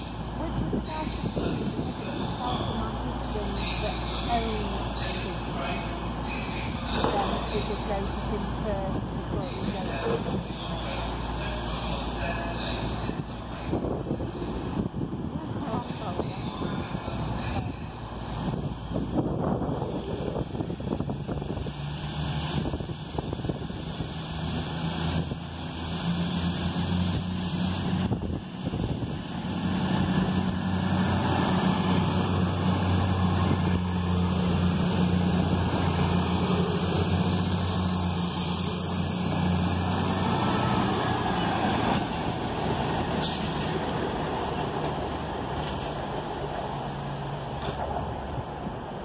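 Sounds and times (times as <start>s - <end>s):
diesel train engines under load: 0.0s - 49.0s.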